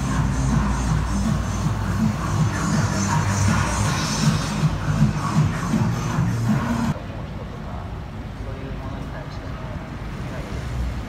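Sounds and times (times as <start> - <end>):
dance-pop music over loudspeakers: 0.0 - 7.0.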